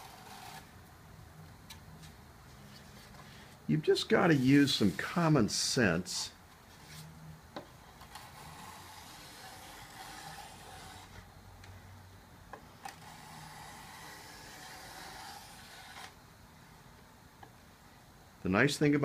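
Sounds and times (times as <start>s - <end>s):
hand rubbing on wood: 3.8s - 5.3s.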